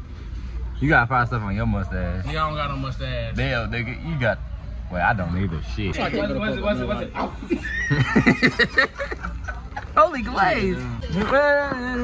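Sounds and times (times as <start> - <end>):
man laughing hard: 7.4 - 9.8.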